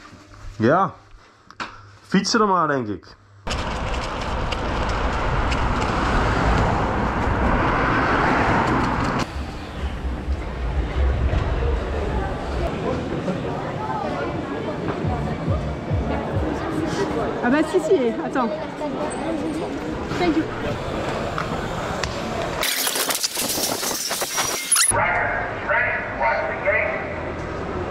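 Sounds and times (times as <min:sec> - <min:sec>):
bike tyres rolling: 0:03.5 - 0:12.8, 0:20.5 - 0:24.9.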